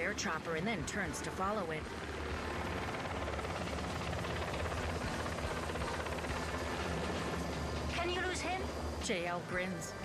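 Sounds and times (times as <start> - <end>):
helicopter flying: 0.0 - 10.0.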